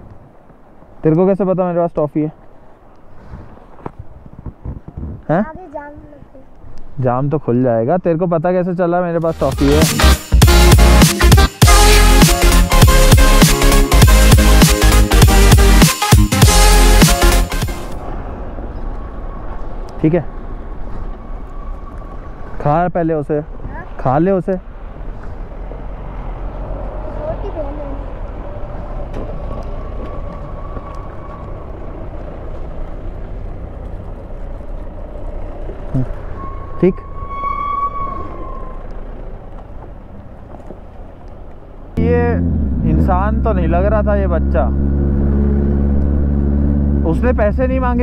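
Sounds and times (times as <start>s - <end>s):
idling vehicle engines: 17.9s - 36.6s, 37.6s - 45.0s.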